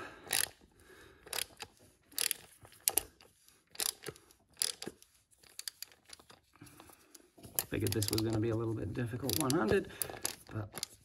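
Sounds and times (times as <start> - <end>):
ratchet clicking: 0.3 - 0.6, 1.2 - 6.4, 7.6 - 8.5, 9.2 - 11.0.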